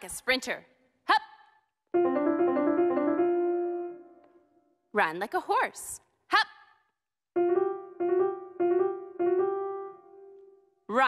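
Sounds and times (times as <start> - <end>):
piano-like keyboard notes: 2.0 - 4.4, 7.4 - 10.7.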